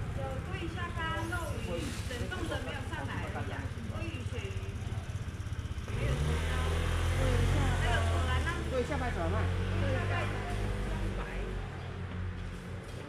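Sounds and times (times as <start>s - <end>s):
vehicle engine droning: 0.0s - 13.0s.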